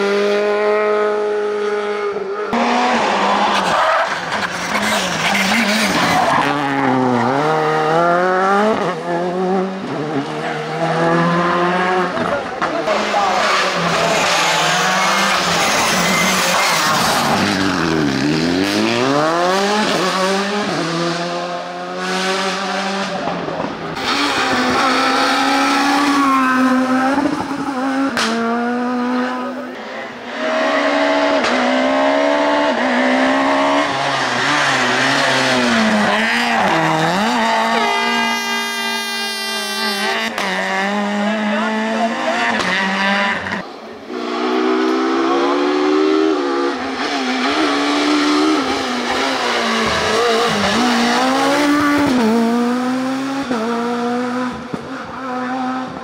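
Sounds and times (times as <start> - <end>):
rally car engines revving: 0.0 - 56.0.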